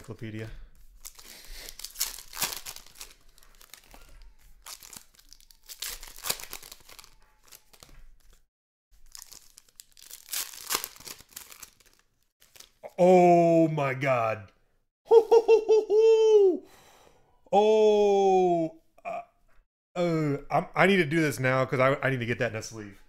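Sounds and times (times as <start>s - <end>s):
plastic wrappers crinkling: 0.8s - 8.4s, 9.0s - 12.8s.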